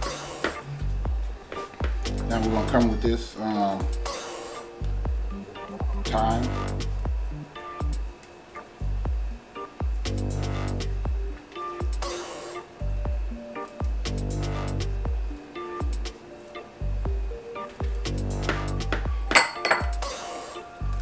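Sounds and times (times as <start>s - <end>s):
electronic music with bass beat: 0.0s - 8.2s, 8.8s - 21.0s
bright clink: 19.3s - 20.0s.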